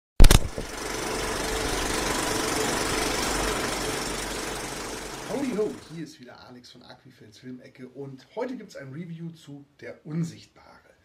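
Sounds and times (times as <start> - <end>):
faint hum: 0.2 - 6.0
film projector clatter: 0.2 - 6.0.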